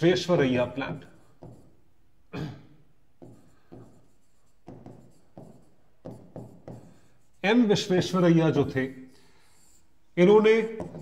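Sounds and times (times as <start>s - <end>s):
pen strokes on writing board: 0.9s - 1.8s, 3.2s - 7.6s, 9.4s - 10.0s, 10.7s - 11.0s.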